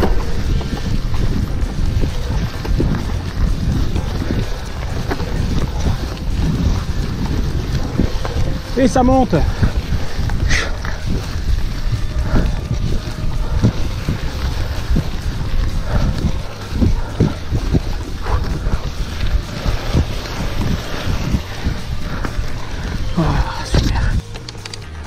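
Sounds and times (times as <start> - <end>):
low rumble: 0.0 - 25.0
wind buffeting microphone: 0.0 - 25.0.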